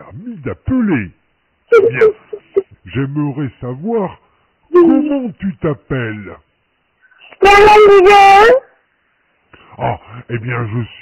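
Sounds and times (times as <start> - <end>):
man's voice over a telephone: 0.0 - 4.2, 9.8 - 11.0
young child's voice: 4.8 - 5.3, 7.2 - 8.8.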